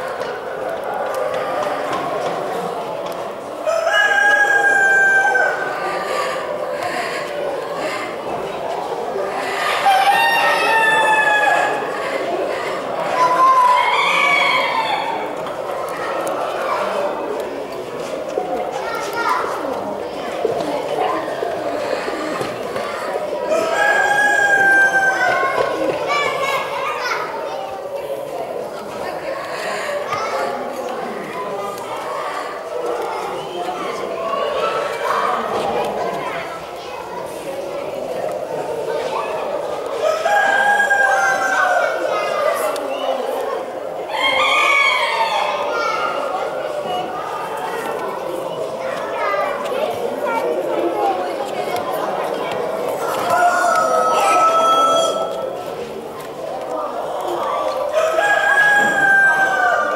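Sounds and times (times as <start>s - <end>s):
chatter of people and children: 0.0s - 59.9s
hubbub of busy hall: 0.0s - 59.9s
rooster crowing: 53.3s - 55.3s.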